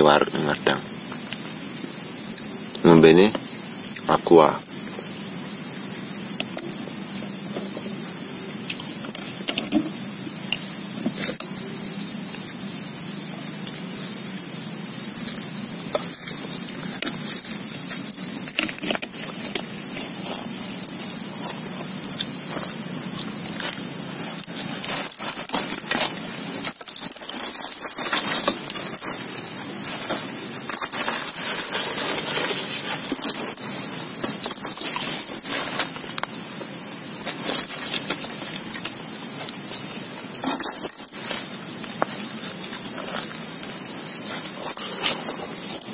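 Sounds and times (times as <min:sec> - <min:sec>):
crickets chirring: 0:00.0 - 0:45.9.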